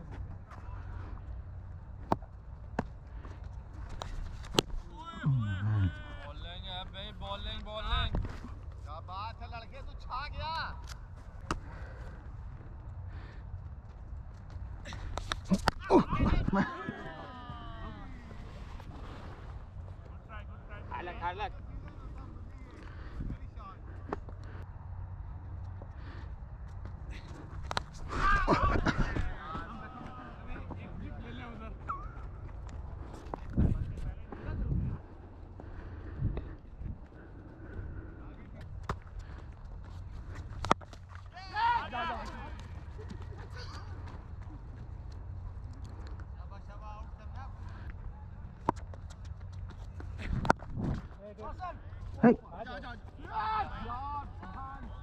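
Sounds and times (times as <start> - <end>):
distant shouts: 4.9 - 6.5, 15.5 - 18.6, 41.3 - 42.7, 53.0 - 55.0
wind rumble on microphone: 27.9 - 40.6, 49.6 - 51.2.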